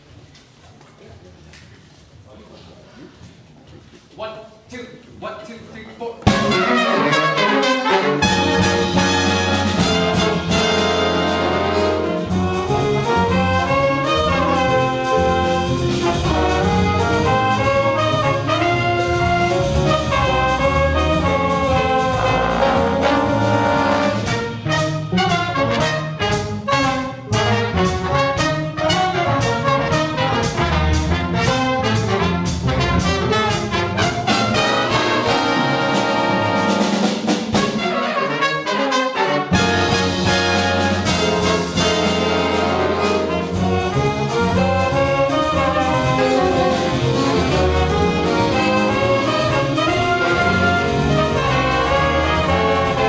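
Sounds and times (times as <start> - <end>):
jazz big band: 6.2 - 53.0
walking bass line: 8.2 - 25.8, 39.6 - 53.0.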